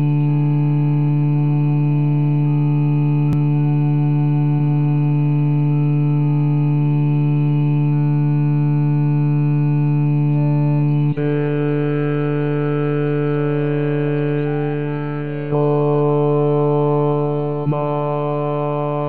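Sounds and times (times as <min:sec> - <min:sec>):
synthesized choral chords: 0:09.6 - 0:19.0.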